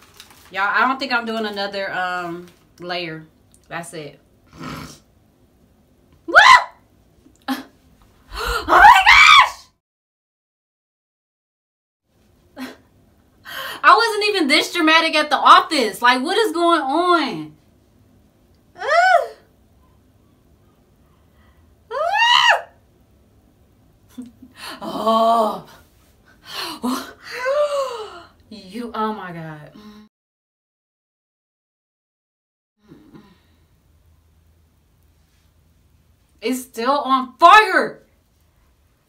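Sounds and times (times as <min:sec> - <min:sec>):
woman's high-pitched cry: 0:08.3 - 0:09.6, 0:18.8 - 0:19.4.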